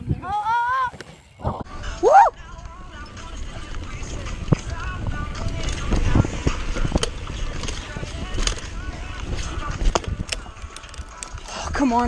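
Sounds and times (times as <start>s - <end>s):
wind on microphone: 0.0s - 0.5s, 1.4s - 12.0s
bike tyres rumbling on dirt: 0.0s - 12.0s
bike chain and frame rattling: 1.2s - 12.0s.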